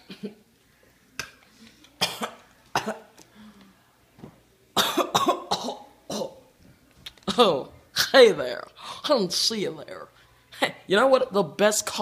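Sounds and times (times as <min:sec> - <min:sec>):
person coughing: 0:02.0 - 0:03.1, 0:04.8 - 0:06.4.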